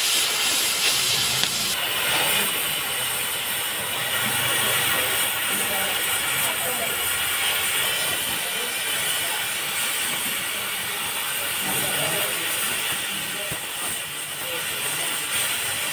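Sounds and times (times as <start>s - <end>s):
cutting torch hissing: 0.0s - 15.9s.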